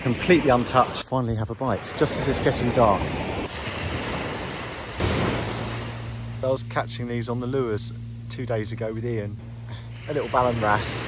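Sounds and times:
sea waves breaking: 0:00.0 - 0:11.0.

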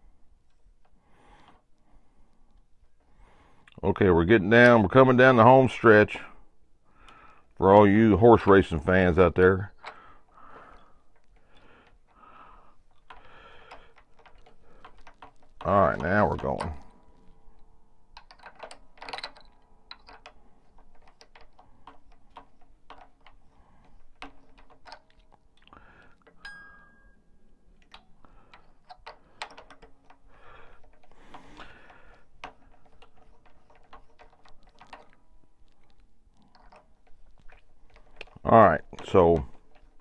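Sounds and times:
guitar strings clicking and rattling: 0:08.3 - 0:40.0
guitar strings ringing: 0:26.4 - 0:27.3.

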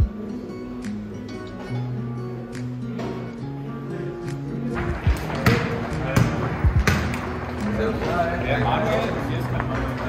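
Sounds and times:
background music: 0:00.0 - 0:10.0
murmur of voices: 0:00.0 - 0:10.0
thuds and slaps on hard surface: 0:05.0 - 0:07.2.

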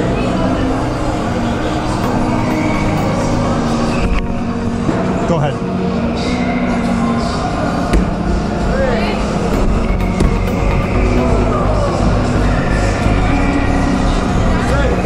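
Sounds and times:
background music: 0:00.0 - 0:15.0
voices in a hall: 0:00.0 - 0:15.0.

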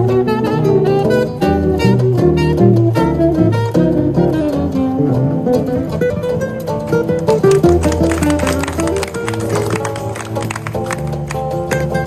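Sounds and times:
classical guitars playing samba: 0:00.0 - 0:12.0
low bass guitar notes: 0:00.0 - 0:12.0.

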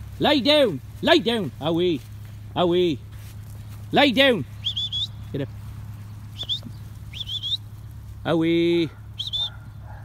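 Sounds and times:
low steady rumble: 0:00.0 - 0:10.0
high whistled chirps: 0:04.6 - 0:05.3, 0:06.4 - 0:07.7, 0:09.2 - 0:09.6.

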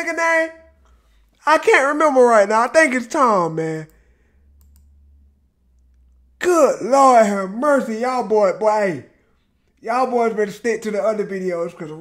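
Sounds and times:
low steady hum: 0:00.0 - 0:12.0
computer mouse clicks: 0:03.9 - 0:05.2.

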